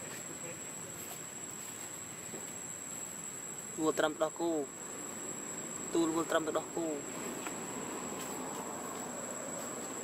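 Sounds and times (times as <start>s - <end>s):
faint outdoor background noise: 0.0s - 10.0s
insect buzz: 0.0s - 10.0s.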